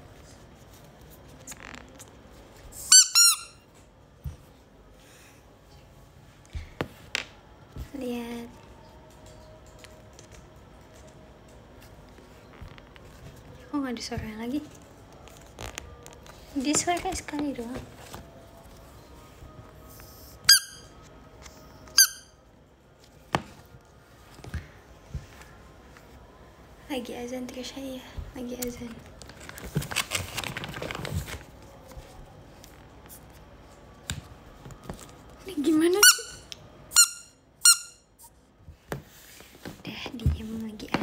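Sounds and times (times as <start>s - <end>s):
rubber duck toy squeaks: 2.8s - 3.6s, 20.4s - 20.9s, 36.0s - 38.0s
rubber duck squeaks: 36.0s - 36.4s.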